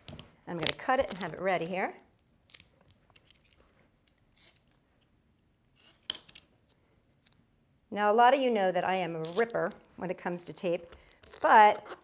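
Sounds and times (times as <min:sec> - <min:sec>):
tape rustling: 0:00.0 - 0:01.8, 0:11.1 - 0:12.0.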